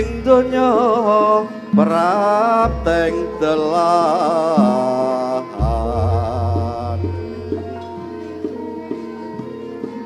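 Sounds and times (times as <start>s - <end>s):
person singing ornamented vocal: 0.0s - 8.1s.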